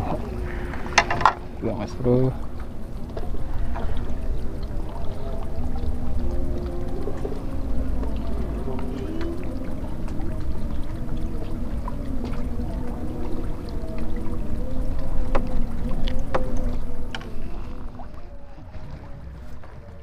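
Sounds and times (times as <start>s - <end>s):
low wind rumble: 0.0s - 20.0s
steady motor drone: 0.0s - 20.0s.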